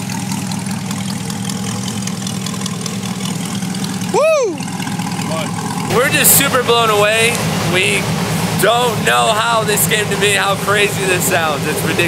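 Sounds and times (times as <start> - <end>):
car engine idling: 0.0 - 12.0
rising and falling whoop: 4.1 - 4.7.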